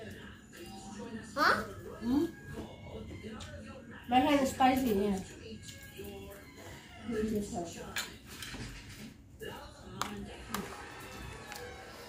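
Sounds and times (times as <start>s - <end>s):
low table chatter: 0.0s - 12.0s.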